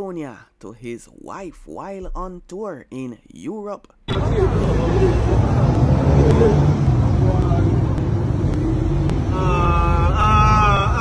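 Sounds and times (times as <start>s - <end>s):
street noise rumble: 4.1s - 11.0s
wavering held voice: 9.3s - 11.0s.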